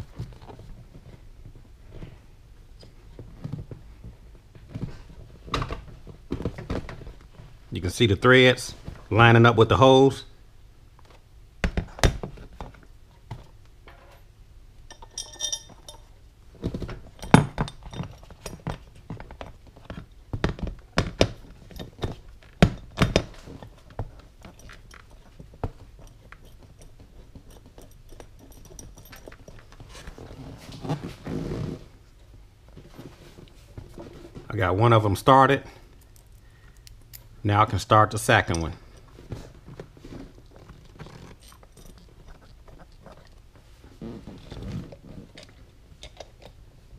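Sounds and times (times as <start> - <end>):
ringing metallic clink: 14.9 - 16.1.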